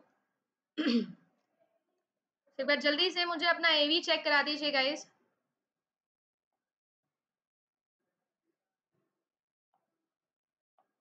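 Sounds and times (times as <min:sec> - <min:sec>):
woman clearing her throat: 0:00.8 - 0:01.2.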